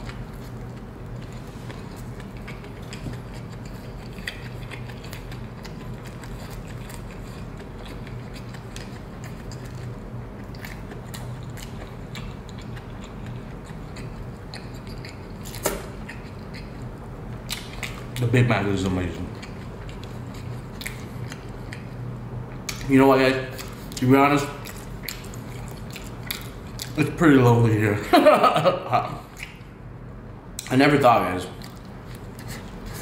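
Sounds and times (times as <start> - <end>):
chewing with wet mouth clicks: 0.0 - 18.2, 19.2 - 22.9, 23.5 - 27.2, 29.2 - 29.7, 31.6 - 33.0
low steady hum: 0.0 - 33.0.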